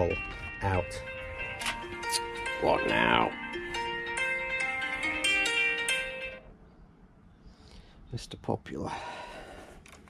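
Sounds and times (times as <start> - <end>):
phone alarm plucked melody: 0.0 - 6.4.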